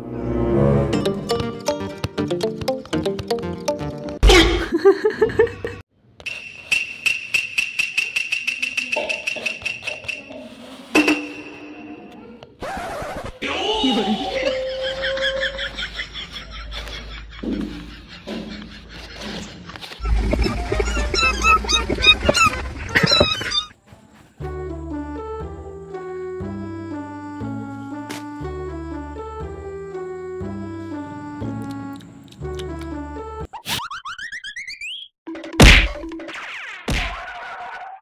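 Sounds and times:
background music: 0.0 - 4.2, 24.4 - 33.5
cats calling: 20.2 - 23.7
loud whack: 35.6 - 37.4.

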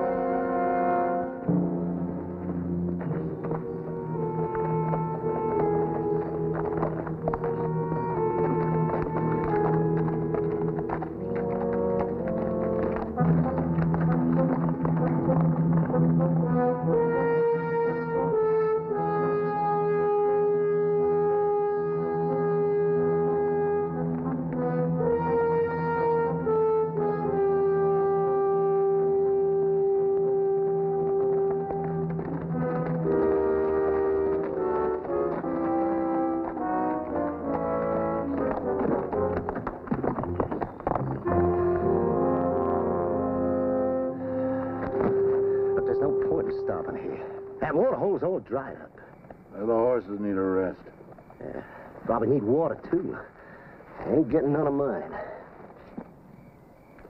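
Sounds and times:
orchestral music with brass: 0.0 - 40.4, 41.0 - 48.0.

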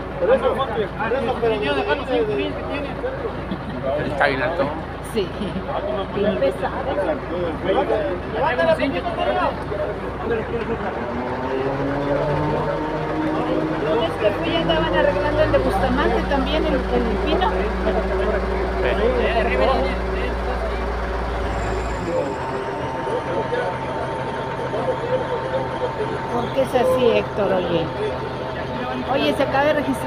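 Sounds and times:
engine hum: 0.0 - 30.0
faint talking voices: 0.0 - 30.0
thin high tone: 16.1 - 29.1.

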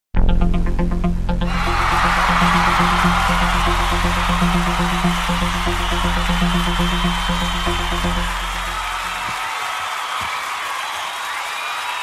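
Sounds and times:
repeating bass pulse: 0.2 - 9.1.

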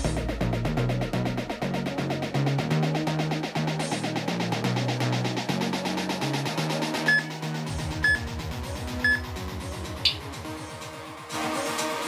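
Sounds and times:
background music: 0.0 - 12.0
short countdown beeps: 7.1 - 7.3, 9.0 - 9.2.

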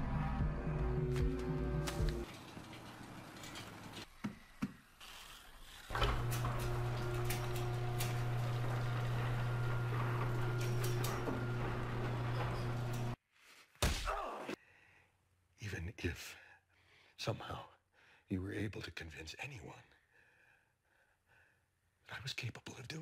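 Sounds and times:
garage door motor hum: 5.8 - 13.2
garage door rattling: 5.9 - 13.2.

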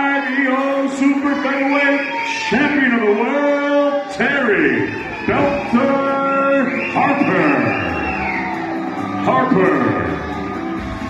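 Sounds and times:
man announcing over loudspeaker: 0.0 - 10.5.

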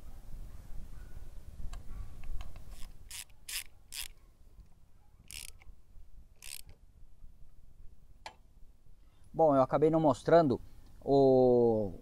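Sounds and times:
ratchet wrench clicking: 2.7 - 4.2, 5.3 - 5.6, 6.4 - 6.8.

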